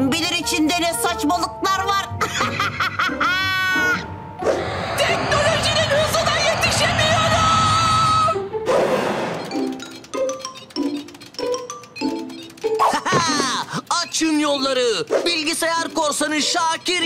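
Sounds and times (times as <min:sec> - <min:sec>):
busy bright cartoon music: 0:00.0 - 0:04.8, 0:07.9 - 0:17.0.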